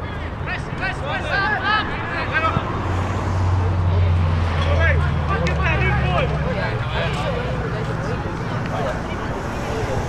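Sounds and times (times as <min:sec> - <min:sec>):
footballers shouting: 0:00.1 - 0:10.0.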